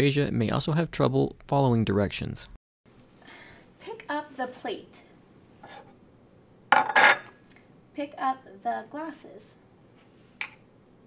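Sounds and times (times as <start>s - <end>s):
plate clattering on tabletop: 6.7s - 7.4s.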